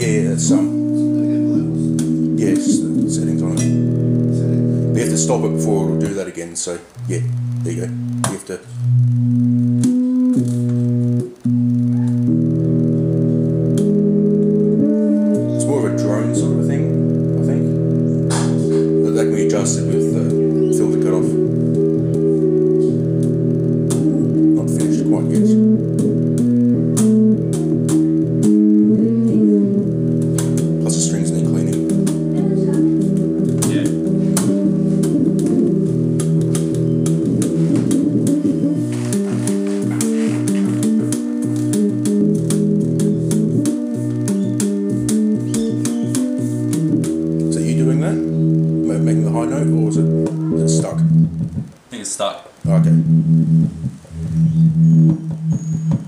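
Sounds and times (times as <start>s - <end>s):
sustained synth tones: 0.0s - 51.9s, 52.5s - 56.0s.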